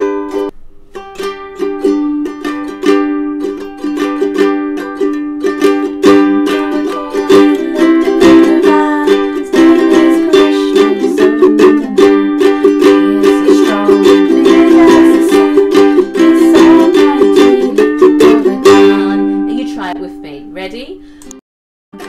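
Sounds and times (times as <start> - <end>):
ukulele strumming: 0.0 - 20.5.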